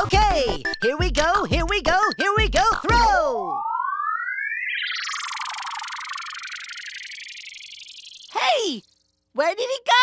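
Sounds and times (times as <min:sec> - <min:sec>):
rising synthesized whistle: 0:03.3 - 0:08.3
shimmering twinkling wash: 0:03.9 - 0:08.3.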